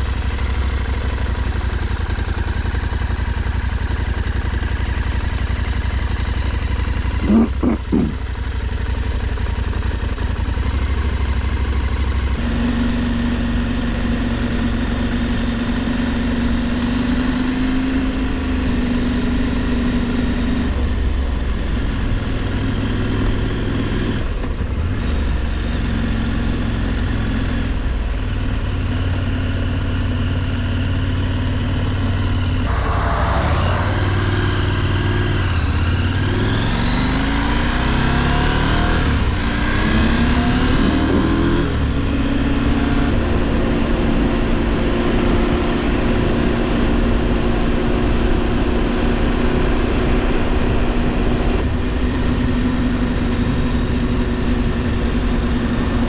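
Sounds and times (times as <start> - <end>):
motorcycle engine running: 0.0 - 56.0.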